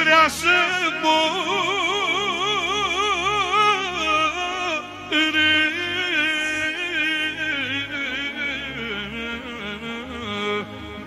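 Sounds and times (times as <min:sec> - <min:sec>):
amplified backing with bass line: 0:00.0 - 0:11.0.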